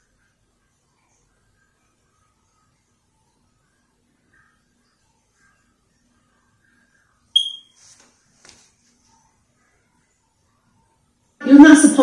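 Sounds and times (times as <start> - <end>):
short high electronic beep: 7.4 - 7.7
soft rustle: 7.7 - 9.8.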